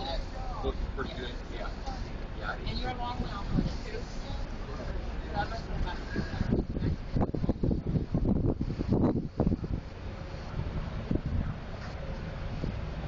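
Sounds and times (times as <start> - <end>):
wind buffeting microphone: 2.0 - 13.0.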